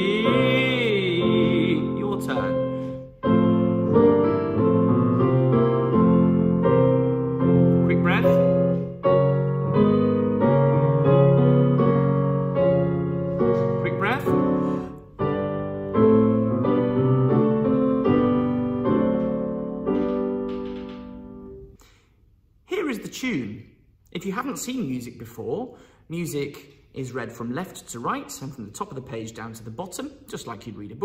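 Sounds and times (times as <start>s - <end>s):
piano: 0.0s - 21.9s.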